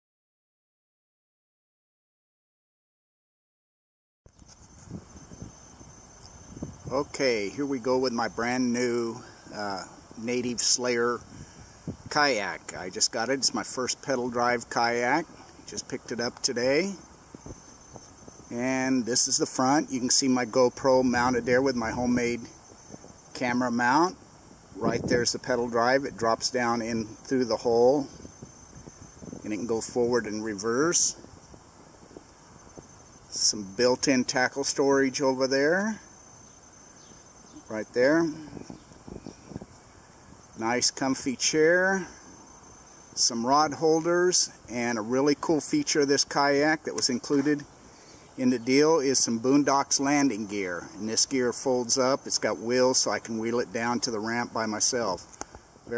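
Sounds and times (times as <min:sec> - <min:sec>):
high whine: 0:04.3 - 0:42.4
low even hiss: 0:04.3 - 0:55.9
man speaking: 0:06.9 - 0:11.2, 0:12.1 - 0:17.0, 0:18.5 - 0:22.5, 0:23.3 - 0:24.2, 0:24.8 - 0:28.2, 0:29.4 - 0:31.2, 0:33.3 - 0:36.0, 0:37.6 - 0:38.6, 0:40.6 - 0:42.2, 0:43.2 - 0:47.6, 0:48.4 - 0:55.3.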